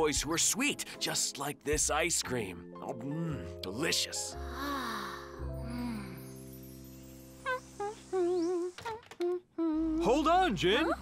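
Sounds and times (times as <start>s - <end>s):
woman humming a tune: 4.5s - 6.4s, 7.5s - 10.1s.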